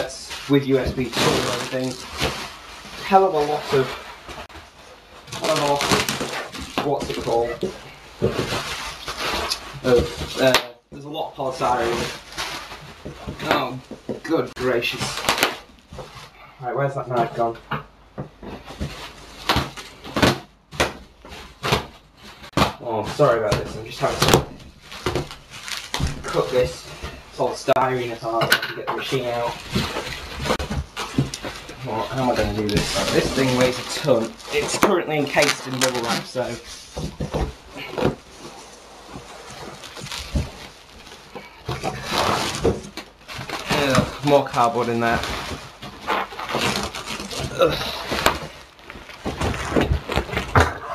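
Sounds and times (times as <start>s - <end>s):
polystyrene packing rustling: 0.0s - 17.6s, 18.3s - 50.9s.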